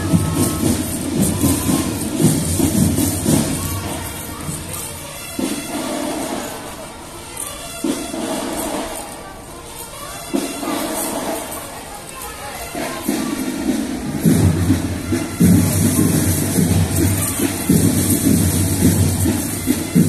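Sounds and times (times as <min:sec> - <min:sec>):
crowd voices: 0:00.0 - 0:20.0
marching band music: 0:00.0 - 0:20.0.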